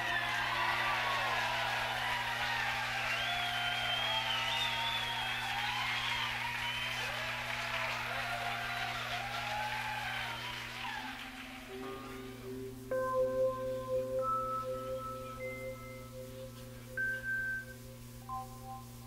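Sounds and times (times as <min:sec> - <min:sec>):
audience applauding and cheering: 0:00.0 - 0:12.5
low electrical hum: 0:00.0 - 0:19.0.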